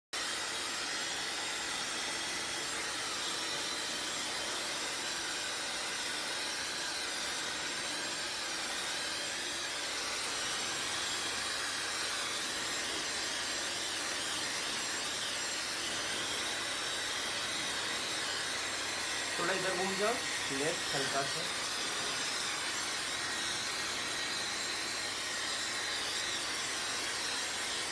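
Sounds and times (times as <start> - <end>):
hair dryer blowing air: 0.2 - 27.9.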